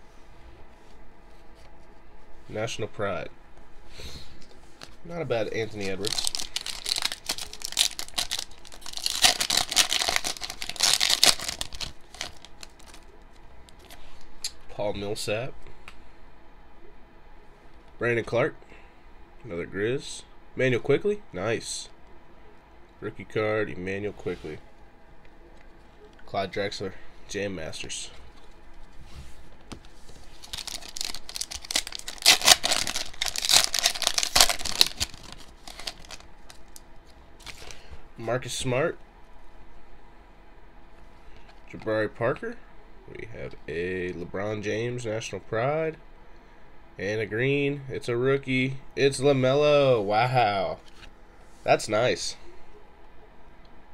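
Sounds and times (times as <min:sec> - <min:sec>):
foil wrapper tearing and crinkling: 0:05.6 - 0:13.0, 0:30.3 - 0:36.8, 0:37.4 - 0:37.8.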